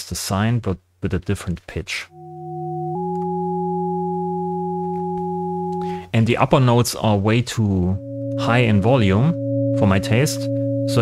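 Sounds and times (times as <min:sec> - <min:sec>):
synth chord of sine tones: 0:02.1 - 0:06.1, 0:07.7 - 0:11.0.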